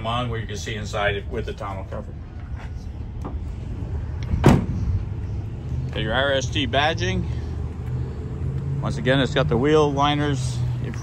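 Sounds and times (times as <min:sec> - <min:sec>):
tailgate shutting with a bang: 0:04.3 - 0:04.9.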